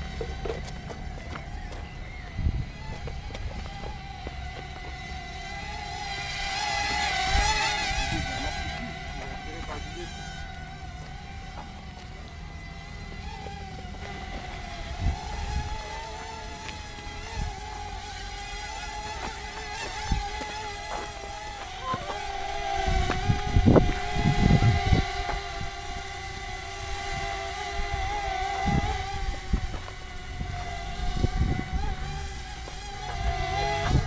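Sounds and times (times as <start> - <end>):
drone propellers whining: 0.0 - 34.0.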